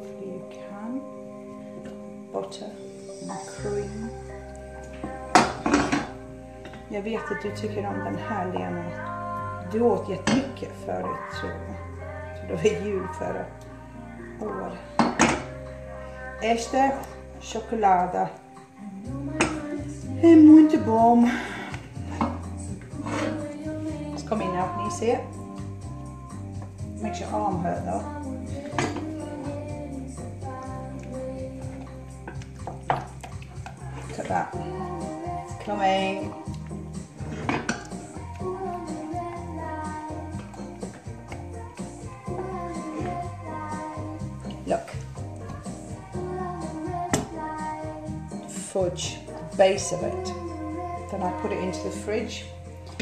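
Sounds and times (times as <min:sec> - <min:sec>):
background music with held notes: 0:00.0 - 0:53.0
wooden spoon scraping saucepan: 0:22.1 - 0:23.6, 0:31.7 - 0:34.8, 0:35.6 - 0:38.6
wooden spoon stirring in saucepan: 0:30.5 - 0:47.4.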